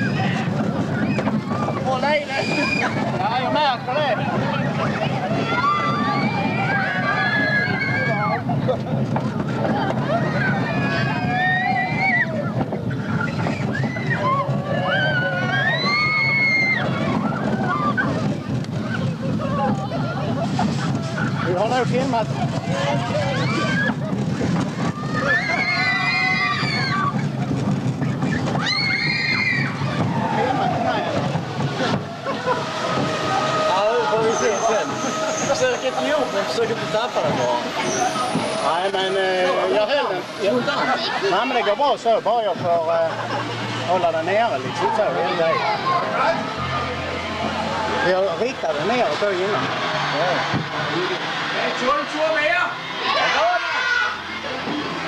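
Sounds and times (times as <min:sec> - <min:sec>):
ride car rumbling: 0:00.0 - 0:55.0
falling whine: 0:10.0 - 0:55.0
high squeal: 0:32.5 - 0:41.6
high-pitched voices shrieking: 0:33.1 - 0:39.4.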